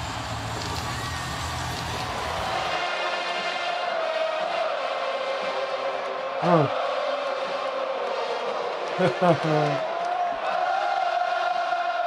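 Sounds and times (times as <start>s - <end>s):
music: 0.0s - 12.0s
stadium crowd cheering and chanting: 0.0s - 12.0s.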